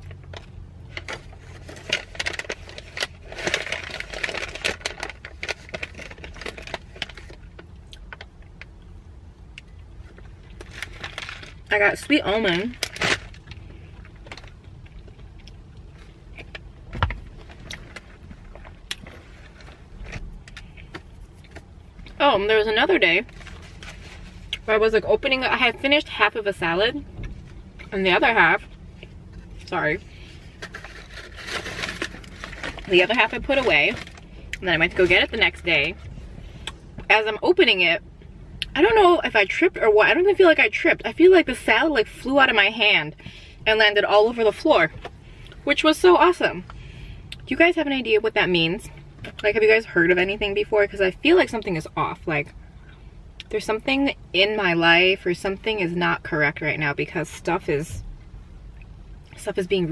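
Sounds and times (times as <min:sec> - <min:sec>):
plastic snack bag crinkling: 0:00.1 - 0:08.3, 0:30.6 - 0:35.6.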